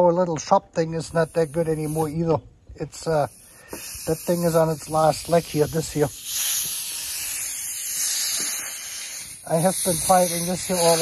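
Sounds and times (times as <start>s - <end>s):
compressed air hissing: 1.1s - 2.4s, 3.0s - 11.0s.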